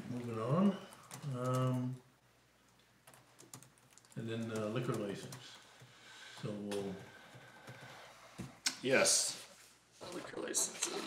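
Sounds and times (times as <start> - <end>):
faint laptop keyboard typing: 0.0 - 2.0, 2.6 - 8.5.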